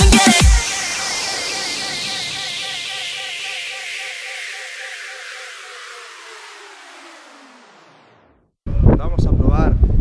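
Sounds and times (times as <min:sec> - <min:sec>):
tape-stop slowdown effect: 0:00.0 - 0:08.5
wavering tones: 0:00.5 - 0:08.3.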